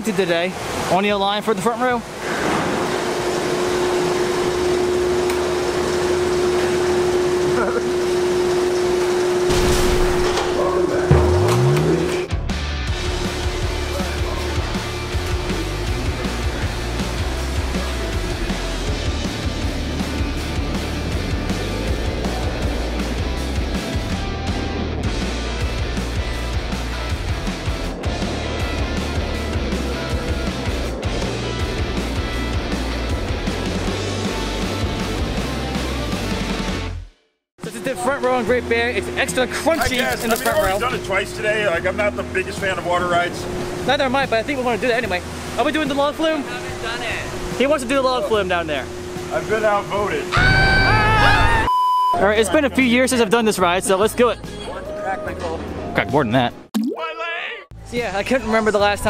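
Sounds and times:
music with steady beat: 11.0 - 36.7.

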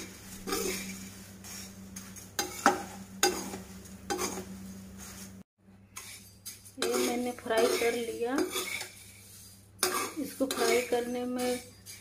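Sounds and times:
metal spatula scraping pan: 0.0 - 1.7, 2.4 - 12.0
light sizzle of frying: 0.0 - 12.0.

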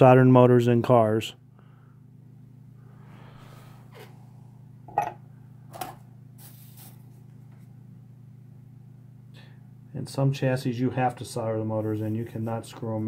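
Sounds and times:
low electrical hum: 0.0 - 13.0
soft hiss: 6.3 - 7.8.

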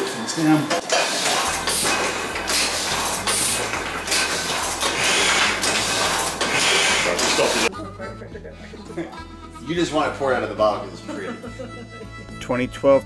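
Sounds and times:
letterpress mechanical clatter: 0.7 - 7.7.

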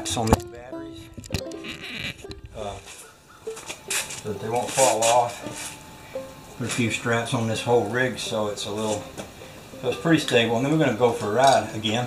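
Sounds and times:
camera handling clicks and knocks: 1.2 - 2.5
man saying uh: 1.9 - 2.9.

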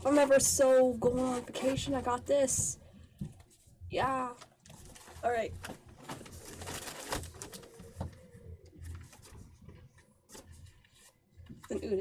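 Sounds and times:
plastic packaging rustling: 4.3 - 11.8.

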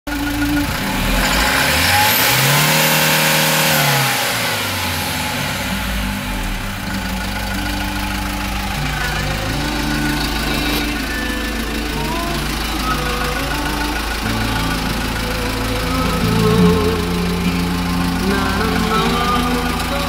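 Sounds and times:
diesel engine revving and idling: 0.1 - 20.0.

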